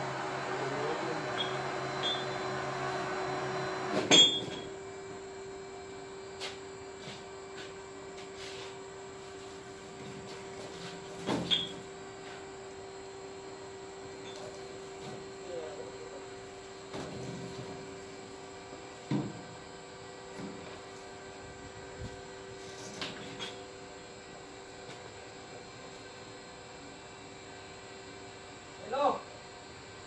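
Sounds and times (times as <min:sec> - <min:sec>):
steady machine hum: 0:00.0 - 0:30.0.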